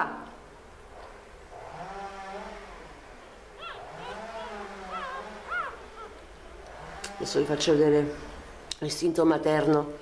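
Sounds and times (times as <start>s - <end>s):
puppies whining and squealing: 3.2s - 6.3s.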